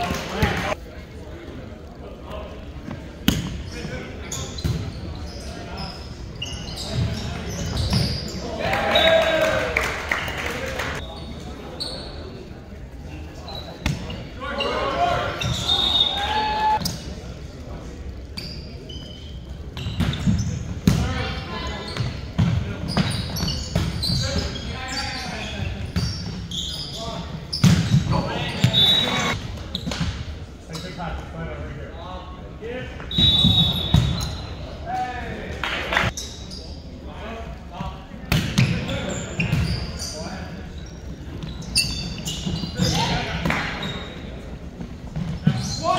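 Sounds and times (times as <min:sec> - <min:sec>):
sneakers squeaking on court: 0:02.8 - 0:08.5, 0:11.0 - 0:12.5, 0:13.3 - 0:17.1, 0:18.2 - 0:31.0, 0:33.1 - 0:34.7, 0:38.3 - 0:45.9
players shouting: 0:08.5 - 0:10.2, 0:14.4 - 0:16.8.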